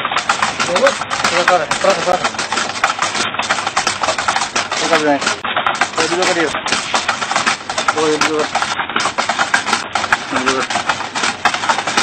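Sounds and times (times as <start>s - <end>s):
wooden pulley rattling: 0.0s - 12.0s.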